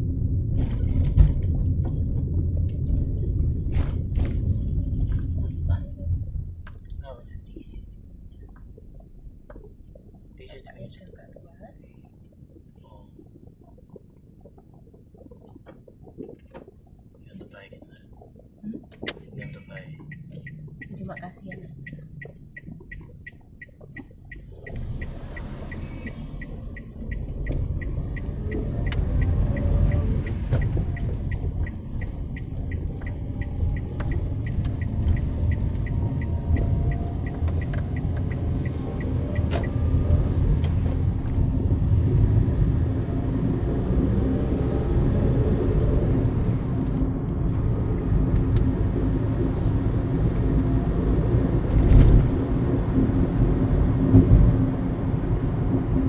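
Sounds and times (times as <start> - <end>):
car engine and tyre rumble: 0.0 - 56.0
turn signal ticking: 0.0 - 56.0.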